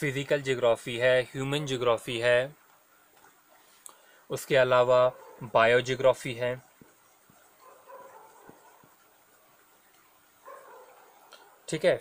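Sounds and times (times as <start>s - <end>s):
marker squeaking on whiteboard: 6.6s - 11.5s.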